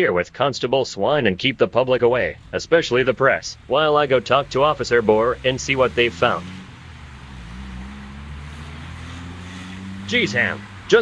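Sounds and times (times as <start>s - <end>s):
car engine running: 1.6s - 11.0s.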